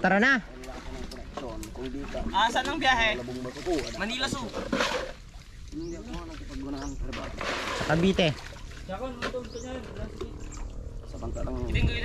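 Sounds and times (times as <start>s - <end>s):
people talking: 0.0s - 4.9s, 5.8s - 12.0s.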